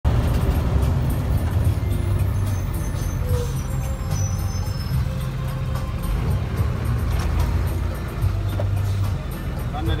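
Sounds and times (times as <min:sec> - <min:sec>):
bus engine rumbling: 0:00.0 - 0:10.0
music: 0:00.2 - 0:10.0.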